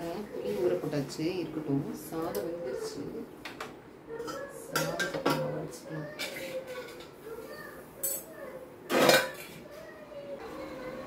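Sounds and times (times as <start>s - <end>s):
metal pots and utensils clattering: 4.2s - 7.2s, 8.0s - 8.3s, 8.9s - 9.6s.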